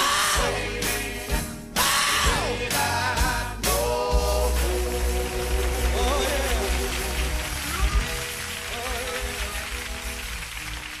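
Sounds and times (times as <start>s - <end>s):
gospel group and band playing: 0.0s - 11.0s
person singing: 1.8s - 7.4s.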